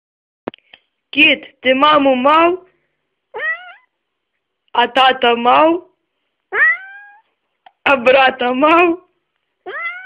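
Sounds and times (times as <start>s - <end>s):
cat meowing: 3.3s - 4.0s, 6.5s - 7.3s, 9.6s - 10.0s.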